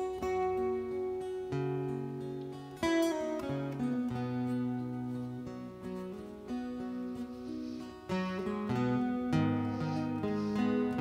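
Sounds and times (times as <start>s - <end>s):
acoustic guitar picking: 0.0s - 11.0s.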